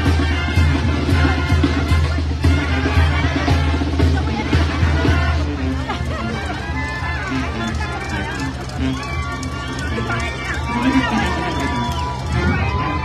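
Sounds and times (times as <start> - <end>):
crowd voices: 0.0 - 13.0
wind band playing melody: 0.0 - 13.0.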